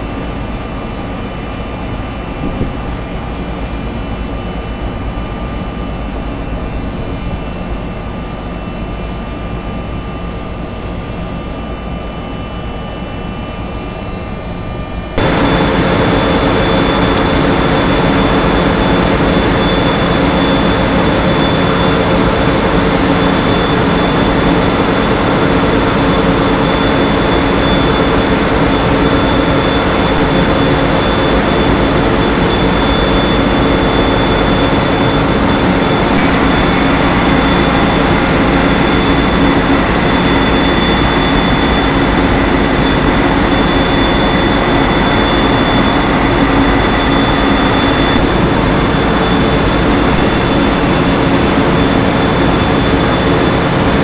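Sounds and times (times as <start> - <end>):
crane engine running: 0.0 - 54.0
machine whining: 0.0 - 54.0.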